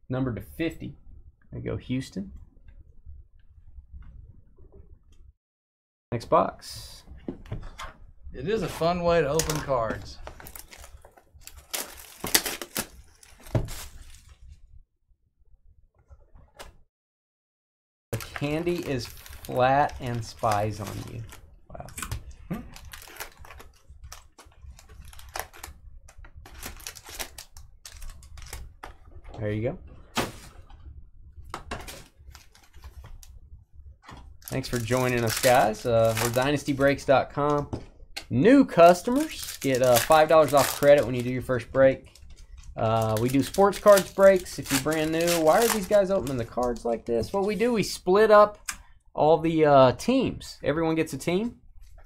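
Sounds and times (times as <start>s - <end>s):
plastic shrink wrap crinkling: 8.7s - 14.5s, 18.2s - 28.8s, 31.7s - 33.3s, 34.3s - 37.1s, 38.8s - 47.7s.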